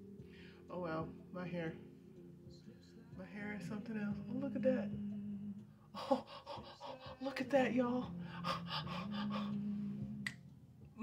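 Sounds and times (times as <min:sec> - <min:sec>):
woman humming: 0:03.5 - 0:10.4.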